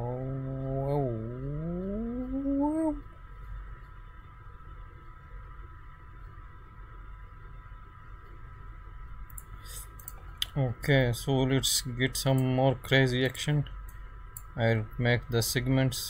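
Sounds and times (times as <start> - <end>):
man humming rising in pitch: 0.0 - 3.1
faint hum with thin whine: 0.0 - 16.0.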